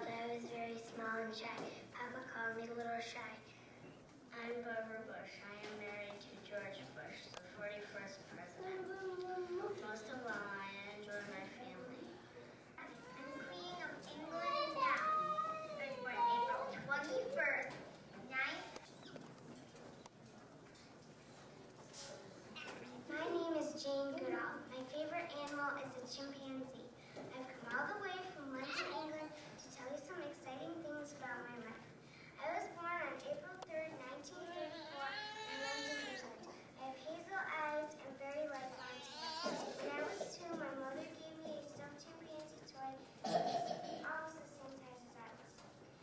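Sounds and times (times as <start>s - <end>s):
girl speaking into a microphone: 0.0s - 3.7s, 4.3s - 18.8s, 22.6s - 45.8s.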